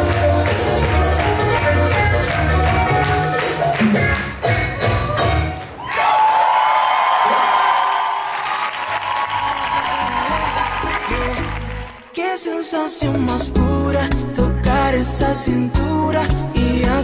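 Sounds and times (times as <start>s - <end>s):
bachata song beat: 0.0s - 5.6s, 9.9s - 17.0s
audience applauding and cheering: 0.0s - 12.3s.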